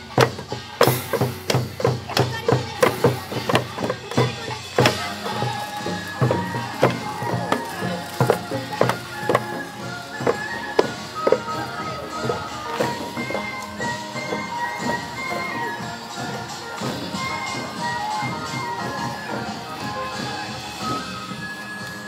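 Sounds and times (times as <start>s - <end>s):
low hourglass drum beats: 0.0s - 21.7s
small gongs struck in quick rhythm: 0.1s - 9.6s.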